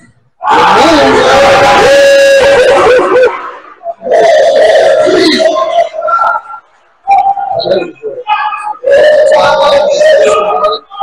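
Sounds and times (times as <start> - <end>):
loud wavering shout: 0.4 - 11.0.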